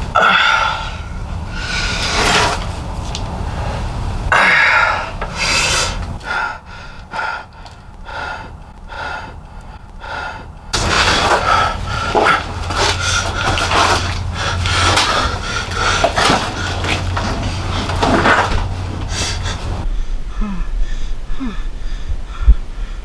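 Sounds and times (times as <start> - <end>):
person breathing hard: 0.0 - 2.4, 3.4 - 23.0
scraping on gritty floor: 1.6 - 3.4, 10.8 - 19.8.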